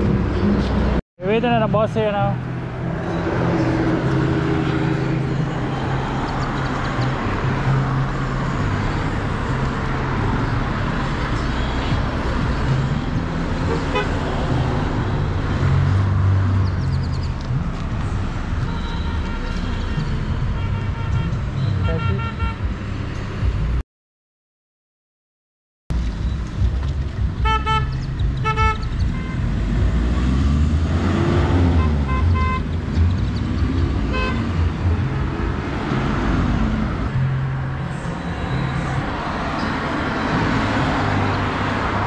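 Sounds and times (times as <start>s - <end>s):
car engines and tyre noise: 0.0s - 23.8s, 25.9s - 42.0s
car horn toots: 13.6s - 14.2s, 18.6s - 22.6s, 27.4s - 29.4s, 31.7s - 32.7s, 34.1s - 34.5s.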